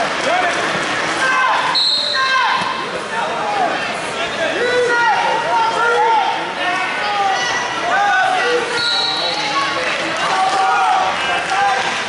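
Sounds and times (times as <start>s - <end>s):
voices shouting in echoing gym: 0.0s - 12.0s.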